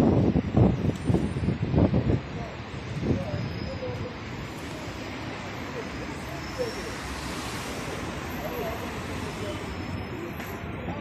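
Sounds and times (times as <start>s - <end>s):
faint voices of passers-by: 0.0s - 11.0s
traffic noise: 0.0s - 11.0s.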